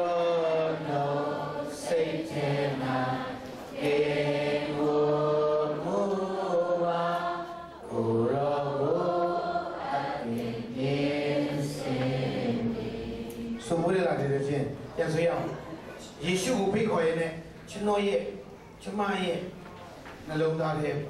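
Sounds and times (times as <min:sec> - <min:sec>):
person singing hymn-like melody: 0:00.0 - 0:13.6.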